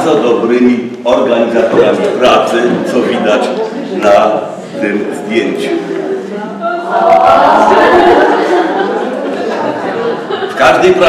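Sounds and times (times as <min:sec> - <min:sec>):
roomful of people laughing: 0:01.3 - 0:11.0.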